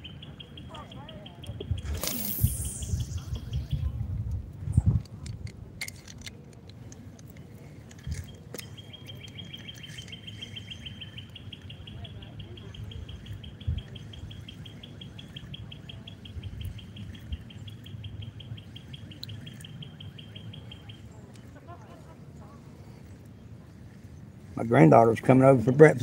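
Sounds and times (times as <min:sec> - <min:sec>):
low rumble: 0:01.8 - 0:05.1.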